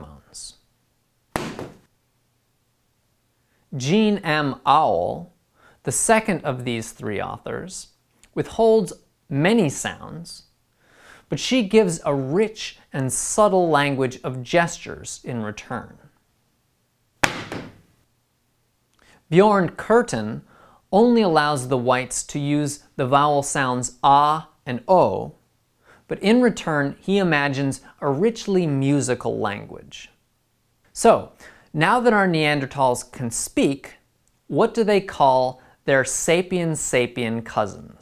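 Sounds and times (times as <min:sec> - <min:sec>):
book landing thud: 0:01.4 - 0:01.9, 0:17.2 - 0:17.9
sharp slam: 0:01.4 - 0:01.9, 0:17.2 - 0:17.9.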